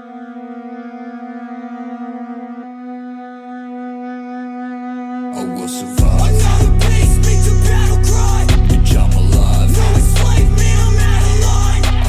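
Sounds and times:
sustained instrumental note: 0.0s - 12.0s.

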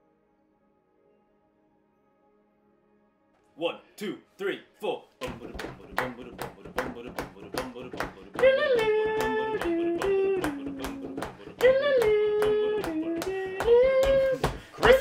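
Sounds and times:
person singing wordless tune: 3.6s - 15.0s
hands clapping a beat: 5.2s - 15.0s.

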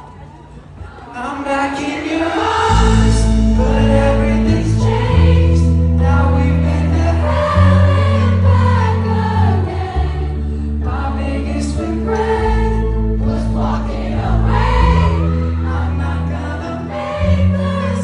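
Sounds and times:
crowd singing along: 0.6s - 18.0s
lead vocal singing: 0.8s - 18.0s
live pop band playing: 1.1s - 18.0s.

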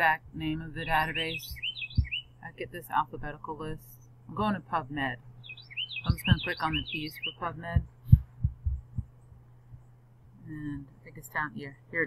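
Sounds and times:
soft low thumps: 0.0s - 2.4s, 6.0s - 10.9s
low electrical hum: 0.0s - 12.0s.

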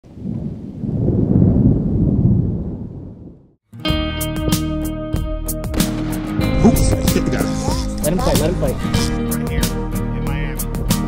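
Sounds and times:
low rolling rumble: 0.0s - 3.6s
music with strummed guitar: 3.7s - 11.0s.

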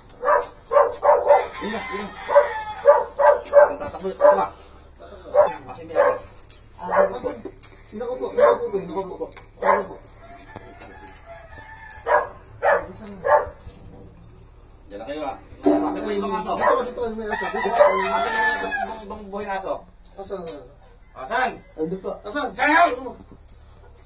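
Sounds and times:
dogs barking: 0.0s - 7.5s, 8.2s - 10.1s, 11.9s - 14.0s, 16.4s - 18.4s
roosters crowing: 0.0s - 7.6s, 8.2s - 14.4s, 15.7s - 19.4s, 20.6s - 24.0s
men's voices: 1.0s - 11.2s, 12.1s - 23.4s.

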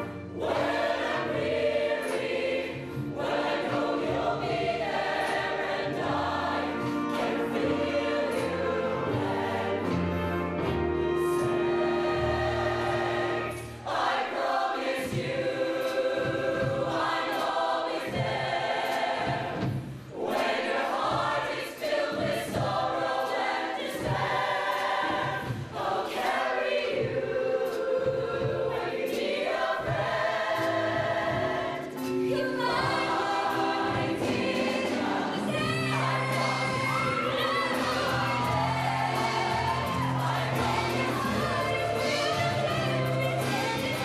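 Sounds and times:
band accompaniment: 0.0s - 44.0s
choir singing in harmony: 0.0s - 44.0s.

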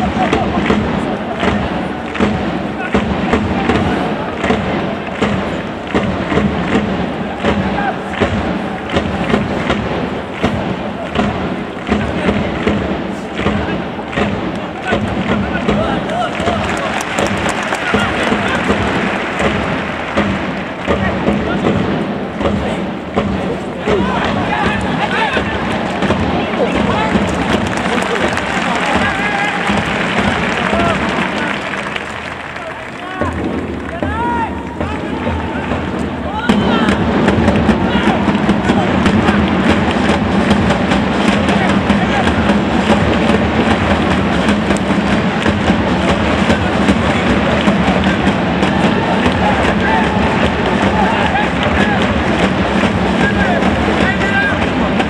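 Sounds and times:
crowd hum: 0.0s - 55.0s
supporters drumming and clapping: 0.0s - 55.0s.

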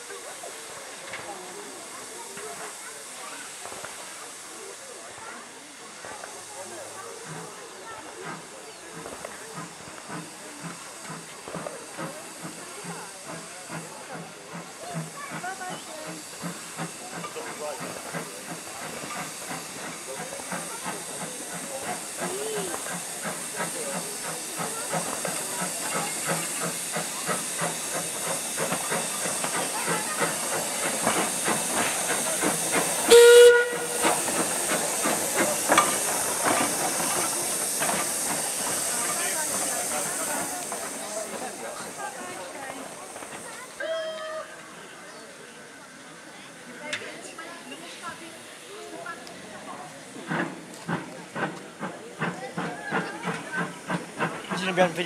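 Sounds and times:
steam hiss: 0.0s - 55.0s
steam locomotive exhaust beats: 0.0s - 55.0s
steam whistle blast: 33.1s - 34.1s.

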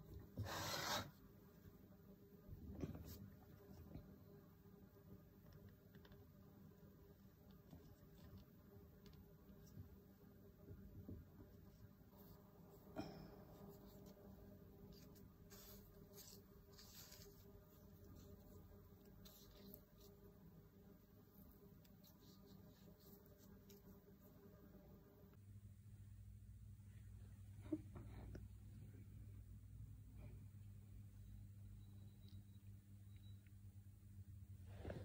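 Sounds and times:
cloth rubbing clay: 13.5s - 20.3s.

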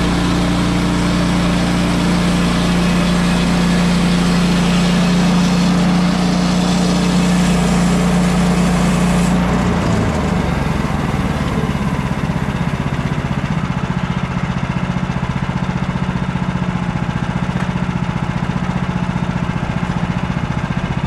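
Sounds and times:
sawmill gas engine running: 0.0s - 21.0s.

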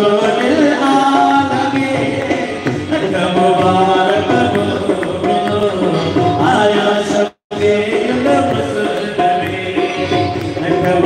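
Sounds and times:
instrumental accompaniment: 0.0s - 11.0s
person singing: 0.0s - 11.0s.

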